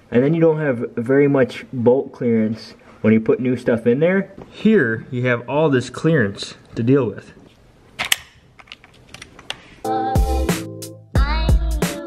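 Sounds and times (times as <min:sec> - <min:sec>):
music with a beat: 0:09.8 - 0:12.0.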